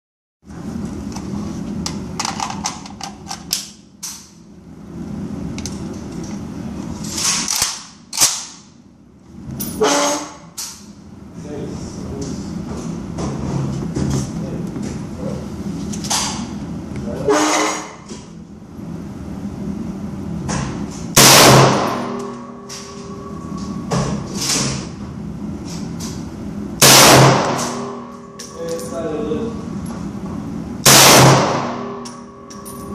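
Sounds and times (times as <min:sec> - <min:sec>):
steady low hum: 0:00.5 - 0:32.9
rifle shot with echo: 0:26.8 - 0:27.8, 0:30.9 - 0:31.8.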